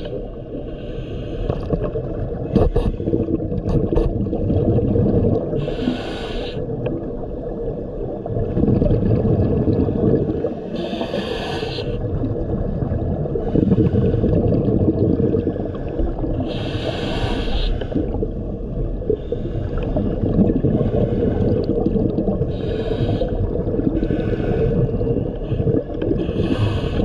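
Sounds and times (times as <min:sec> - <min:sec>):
gurgle of exhaled bubbles: 0:01.4 - 0:05.9, 0:06.6 - 0:11.2, 0:11.8 - 0:17.0, 0:17.7 - 0:27.0
regulator inhalation hiss: 0:05.6 - 0:06.6, 0:10.8 - 0:12.0, 0:16.5 - 0:18.0, 0:22.5 - 0:23.3.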